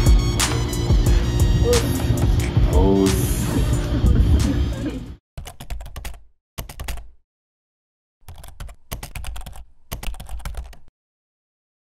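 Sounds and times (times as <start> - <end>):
rapid keyboard clicking: 5.4 - 7.2, 8.2 - 10.9.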